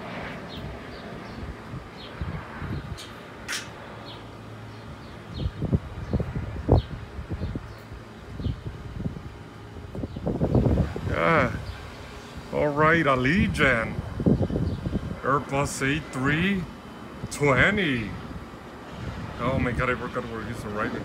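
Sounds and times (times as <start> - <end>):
jet rumbling overhead: 0.0 - 21.0
wind thumps on microphone: 1.3 - 3.8, 5.3 - 12.0, 18.2 - 19.4.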